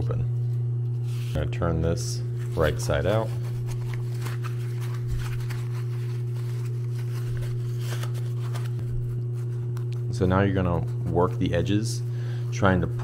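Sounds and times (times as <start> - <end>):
low electrical hum: 0.0 - 13.0
nylon fabric rustling: 2.3 - 9.7.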